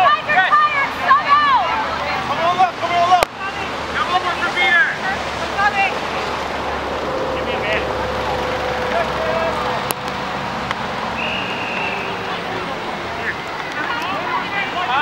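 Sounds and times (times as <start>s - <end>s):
players shouting: 0.0s - 6.2s.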